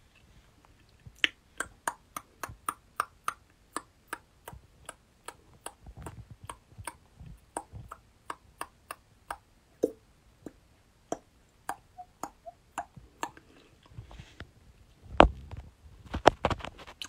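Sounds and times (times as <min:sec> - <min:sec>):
mouth clicks and lip smacks: 0:00.8 - 0:14.0.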